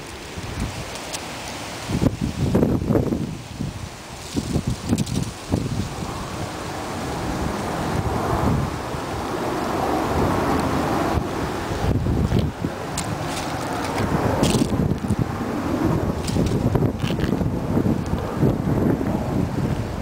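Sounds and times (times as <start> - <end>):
wind buffeting microphone: 0.0 - 20.0
short crackles: 12.3 - 15.2.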